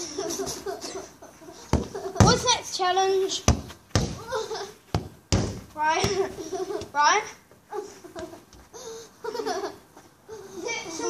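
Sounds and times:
football kicked and bouncing: 1.7s - 2.5s, 3.4s - 4.3s, 4.9s - 7.0s.

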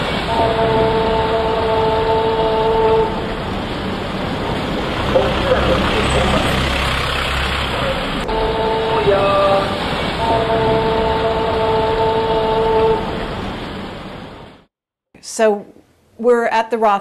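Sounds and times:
city street traffic: 0.0s - 14.6s
sustained chord-like tones: 3.9s - 13.0s
indistinct voices: 4.4s - 13.2s.

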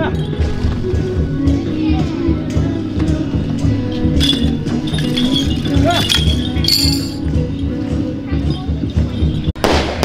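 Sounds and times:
metallic clinking and jingling: 0.0s - 1.0s, 3.7s - 9.6s.

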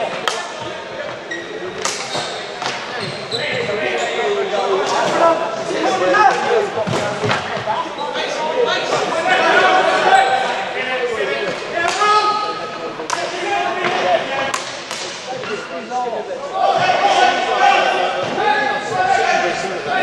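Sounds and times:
players calling out: 0.0s - 20.0s.

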